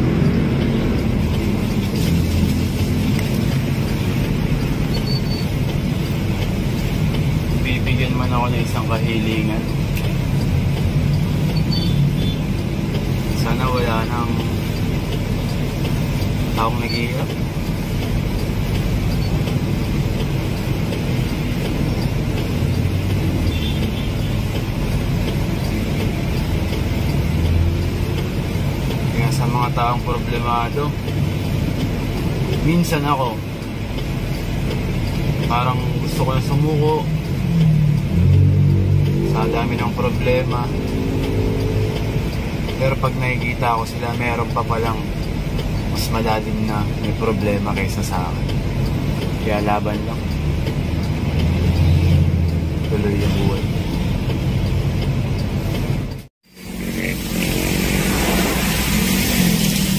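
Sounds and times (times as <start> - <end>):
vehicle engine and road rumble: 0.0 - 59.9.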